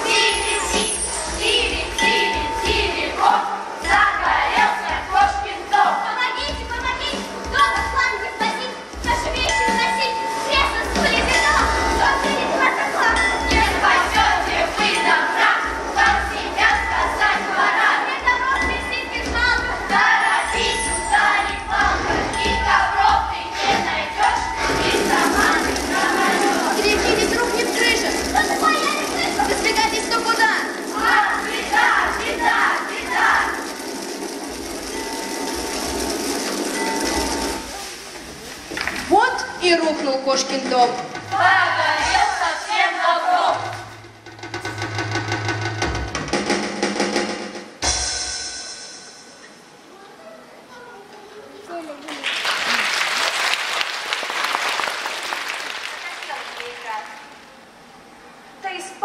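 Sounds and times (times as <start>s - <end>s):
music: 0.0s - 50.0s
children shouting: 9.8s - 33.8s
snare drum roll: 18.8s - 39.4s, 43.5s - 48.5s
loud cymbal crash: 47.8s - 49.7s.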